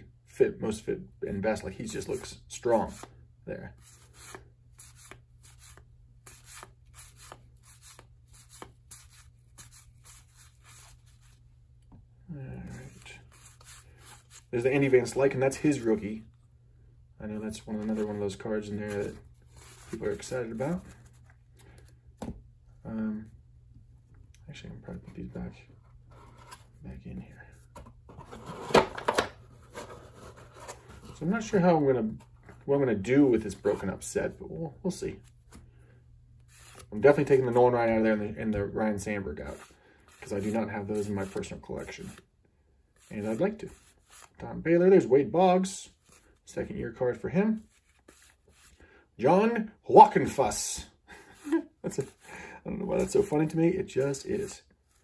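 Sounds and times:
cards rustling and scraping: 0:01.8 - 0:11.5, 0:12.6 - 0:16.1, 0:17.5 - 0:22.4, 0:27.5 - 0:32.7, 0:35.1 - 0:37.6, 0:38.9 - 0:42.3, 0:42.9 - 0:44.4, 0:45.9 - 0:46.5, 0:47.6 - 0:48.8, 0:51.3 - 0:55.0.

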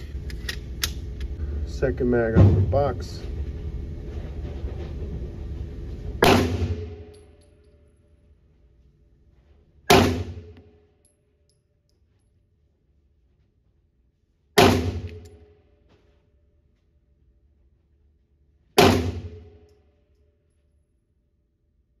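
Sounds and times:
gunshot echo: 0:06.2 - 0:07.1, 0:09.9 - 0:10.6, 0:14.6 - 0:15.2, 0:18.8 - 0:19.5
pistol shots: 0:06.2 - 0:07.2, 0:09.9 - 0:10.6, 0:14.6 - 0:15.3, 0:18.8 - 0:19.5.

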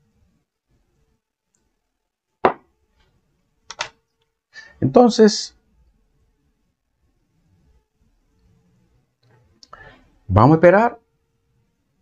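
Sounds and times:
short in-breath: 0:09.7 - 0:10.1.

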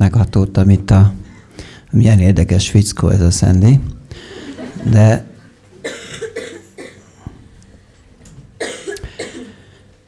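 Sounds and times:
man coughing: 0:05.8 - 0:07.3, 0:08.6 - 0:09.8.

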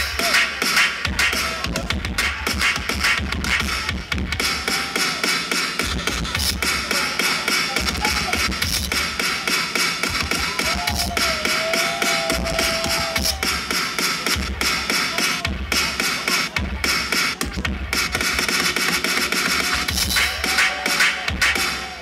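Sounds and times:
dance music over loudspeakers: 0:00.0 - 0:22.0.

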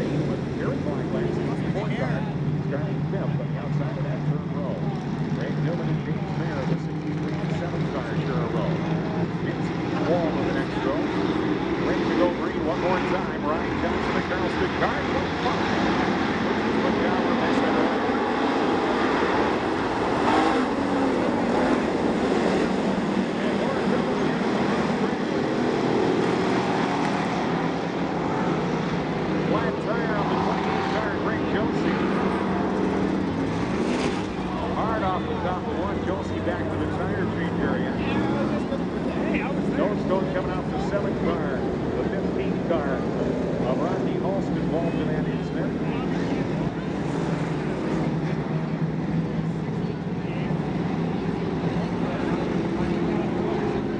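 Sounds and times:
race car engines passing: 0:00.0 - 0:53.9.

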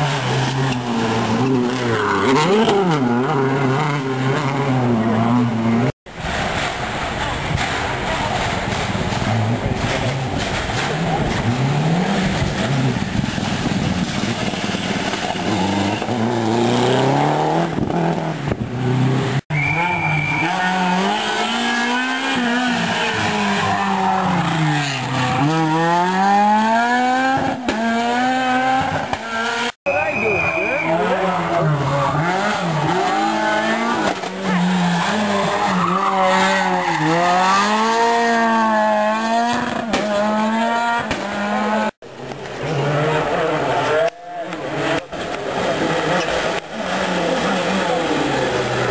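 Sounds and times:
rally car engines revving: 0:00.0 - 0:48.9.

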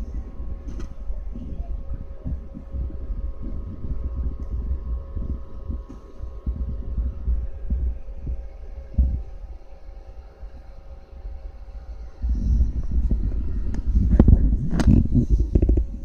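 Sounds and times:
microphone handling thumps: 0:00.0 - 0:09.4, 0:12.2 - 0:16.0
computer hum and whine: 0:00.0 - 0:16.0.

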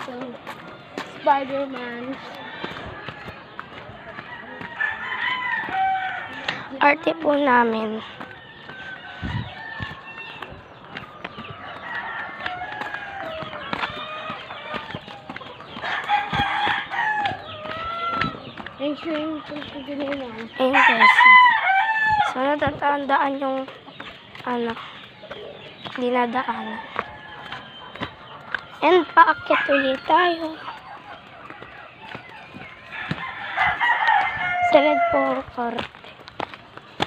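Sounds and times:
footsteps on dirt: 0:00.0 - 0:37.0
roosters crowing: 0:00.4 - 0:22.6, 0:24.0 - 0:35.7.

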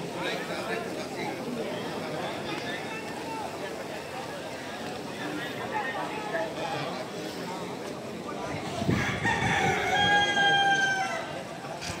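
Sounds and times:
crowd murmur: 0:00.0 - 0:12.0
rooster crowing: 0:08.9 - 0:11.4.

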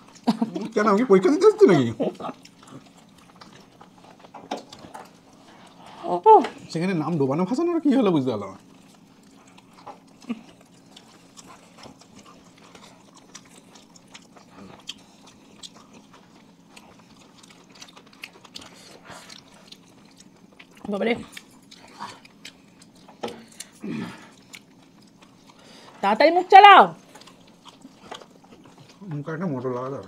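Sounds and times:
murmured hums: 0:00.0 - 0:30.0
people chewing food: 0:00.0 - 0:30.0.

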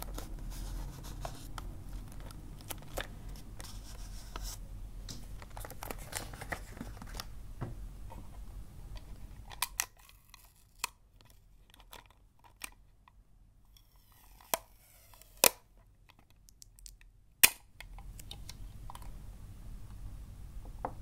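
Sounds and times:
low steady background noise: 0:00.0 - 0:21.0.

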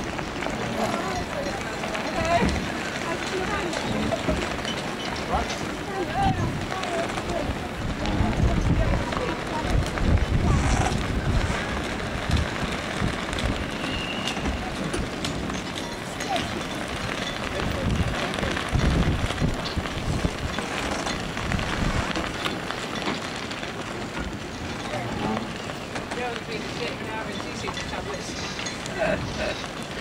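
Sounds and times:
indistinct voices: 0:00.0 - 0:11.6
wind gusting on microphone: 0:00.0 - 0:30.0.

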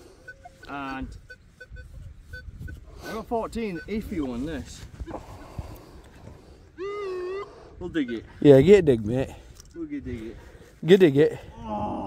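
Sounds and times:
metal detector beeps: 0:00.2 - 0:04.7, 0:08.0 - 0:08.6
wind rumble on microphone: 0:01.0 - 0:06.4.

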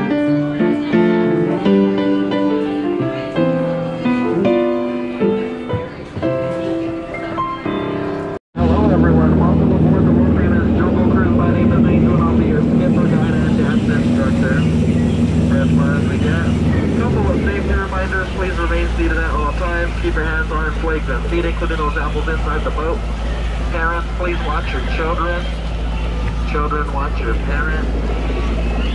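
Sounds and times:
upright piano playing: 0:00.0 - 0:28.9
boat motor hum: 0:08.2 - 0:28.9
indistinct voices: 0:08.6 - 0:28.6
water churning around boat: 0:08.6 - 0:28.9.

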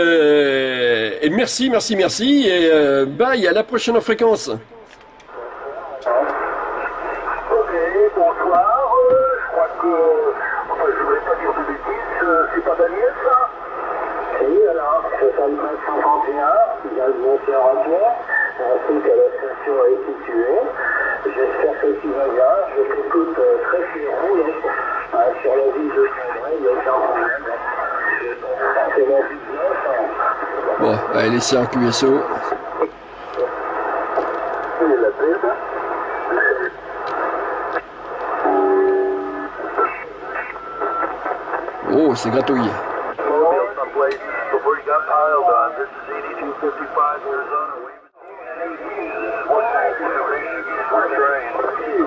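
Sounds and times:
single-sideband radio speech: 0:01.8 - 0:33.7, 0:34.7 - 0:37.4, 0:38.4 - 0:52.0.

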